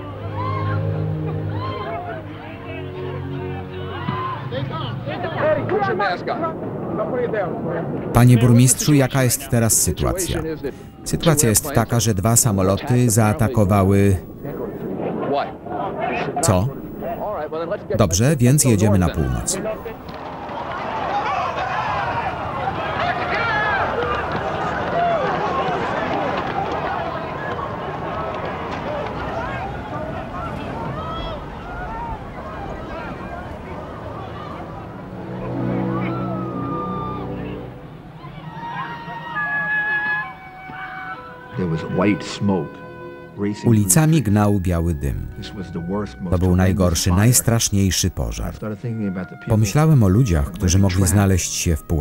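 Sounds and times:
crowd shouting: 0:00.0 - 0:06.5, 0:14.4 - 0:17.5, 0:18.8 - 0:41.6
music: 0:00.0 - 0:06.5, 0:31.7 - 0:52.0
street noise: 0:00.0 - 0:48.6
people talking and calling: 0:00.0 - 0:52.0.

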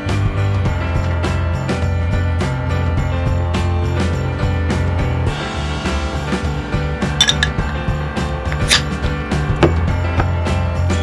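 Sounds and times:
background music with bass line: 0:00.0 - 0:11.0
metallic clinks opening bottle cap: 0:07.2 - 0:07.6, 0:08.5 - 0:08.9.

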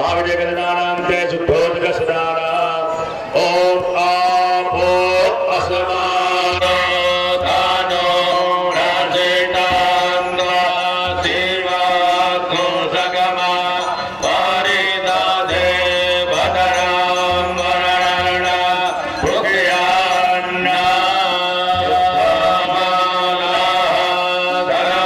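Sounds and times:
voices chanting mantra: 0:00.0 - 0:25.0.

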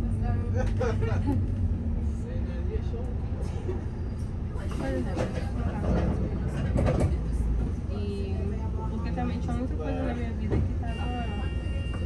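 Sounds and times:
bus engine idling: 0:00.0 - 0:12.0
passenger talking: 0:00.0 - 0:12.0.

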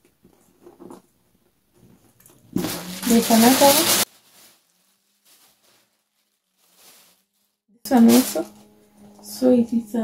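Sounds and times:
plastic packaging rustling: 0:02.2 - 0:08.7.

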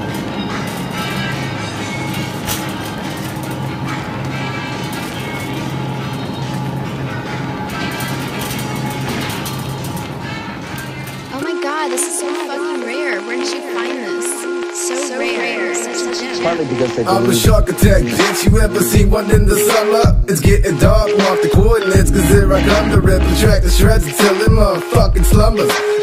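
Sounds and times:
shopping cart rolling and rattling: 0:00.0 - 0:11.6
music with warbling tone: 0:00.0 - 0:26.0
background voices: 0:14.8 - 0:20.6, 0:21.6 - 0:25.4
steady low hum: 0:22.0 - 0:24.0.

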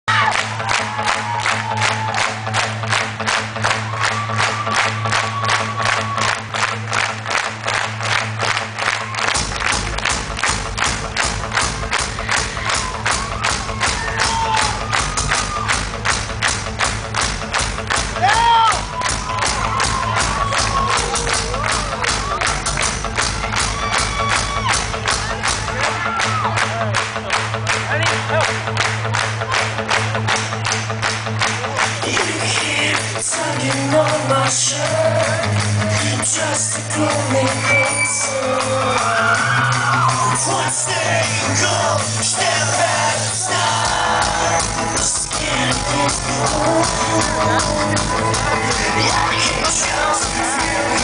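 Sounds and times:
crowd shouting and cheering: 0:00.0 - 0:51.0
rock band playing live: 0:02.3 - 0:51.0.

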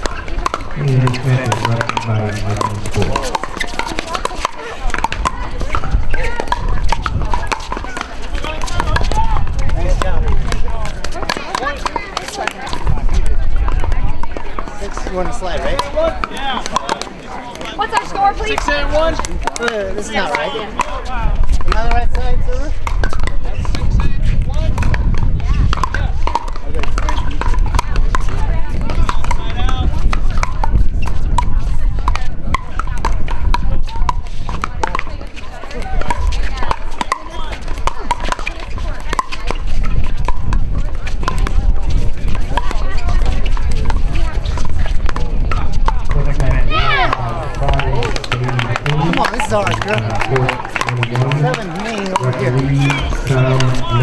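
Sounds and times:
paddles hitting plastic ball: 0:00.0 - 0:12.8, 0:24.7 - 0:54.0
indistinct voices: 0:00.0 - 0:22.1, 0:22.8 - 0:54.0.

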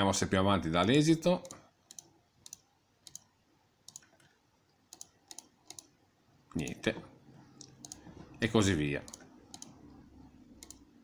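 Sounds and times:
computer mouse clicks: 0:01.4 - 0:03.3, 0:03.9 - 0:05.9, 0:07.6 - 0:08.2, 0:09.0 - 0:10.0, 0:10.6 - 0:10.9.

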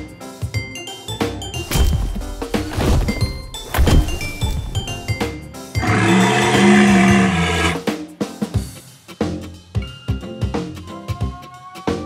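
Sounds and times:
cartoon dinosaur roar: 0:05.8 - 0:07.8.

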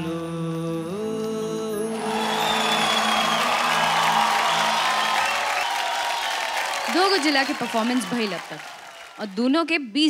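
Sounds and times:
audience applauding and cheering: 0:01.9 - 0:09.7.

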